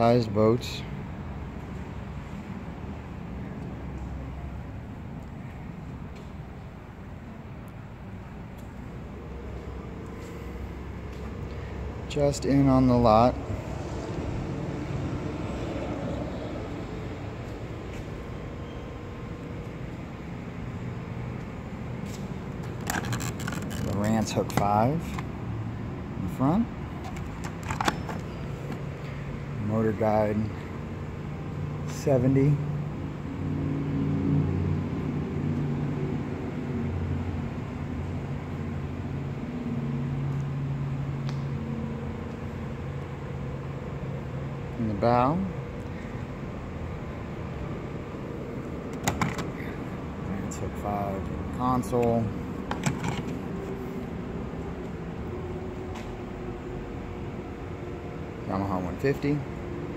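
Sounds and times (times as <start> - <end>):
low background hum: 0.0 - 59.9
handling clicks and taps: 51.9 - 53.4.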